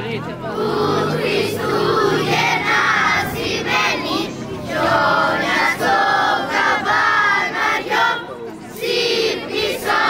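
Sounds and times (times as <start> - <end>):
children's choir singing: 0.5 - 10.0.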